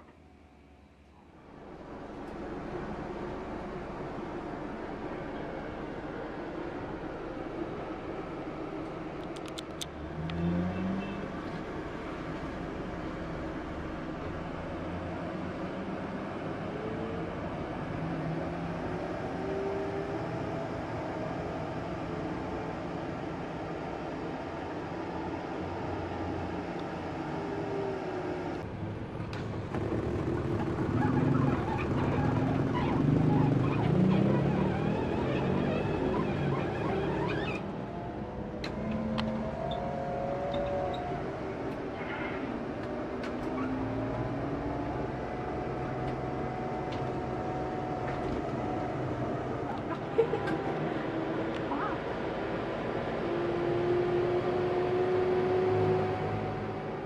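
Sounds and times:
coach engine and road rumble: 0.0 - 57.0.

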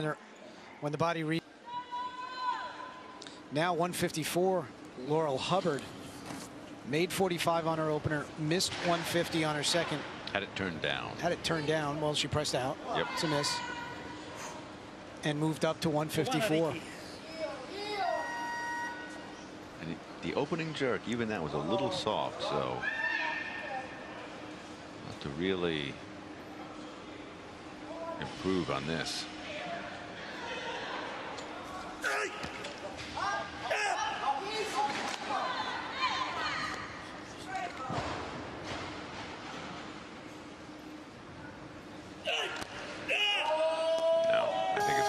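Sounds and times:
arena crowd shouting: 1.6 - 3.1, 12.9 - 14.2, 29.7 - 32.6, 33.2 - 36.8, 42.2 - 45.0
steady high beep: 18.2 - 19.2.

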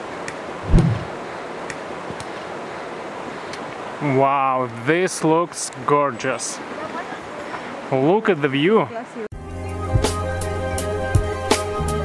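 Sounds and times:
low thump: 0.6 - 1.1
wind on microphone: 0.6 - 1.2.

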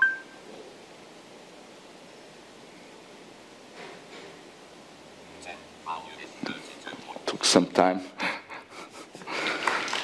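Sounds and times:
two-note electronic beep: 0.0 - 0.4
faint room hiss: 0.0 - 10.0.

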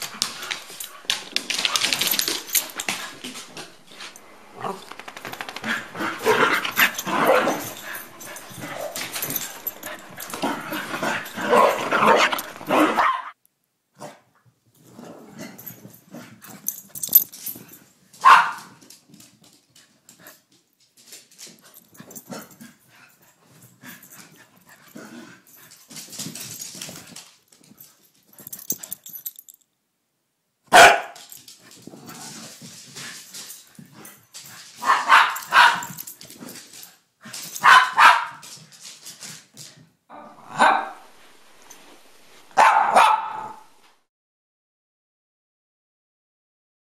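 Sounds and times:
dogs scuffling: 0.0 - 13.0, 14.8 - 29.6, 31.0 - 44.0
dogs barking: 5.4 - 13.4, 18.2 - 18.7, 30.7 - 31.4, 34.8 - 36.2, 37.6 - 38.4, 40.1 - 41.1, 42.6 - 43.7.

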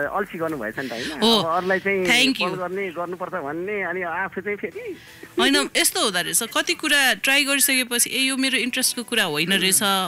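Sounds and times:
person talking: 0.0 - 3.2.

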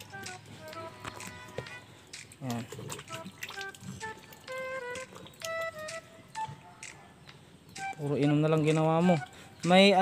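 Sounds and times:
goat lapping water: 0.0 - 6.7
background music notes: 0.0 - 10.0.

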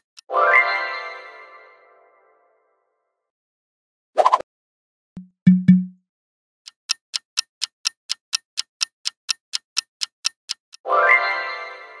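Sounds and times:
clock ticking: 5.2 - 6.0, 6.7 - 10.8.

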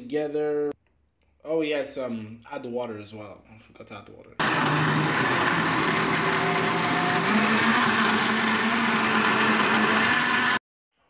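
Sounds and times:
blender motor running: 4.4 - 10.6.

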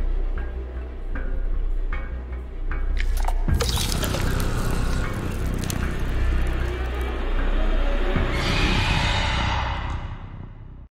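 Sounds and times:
low rumbling drone: 3.4 - 10.7.

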